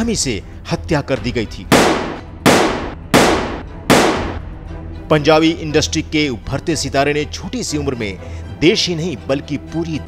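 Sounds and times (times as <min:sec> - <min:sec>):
gunshots: 0:01.7 - 0:04.5.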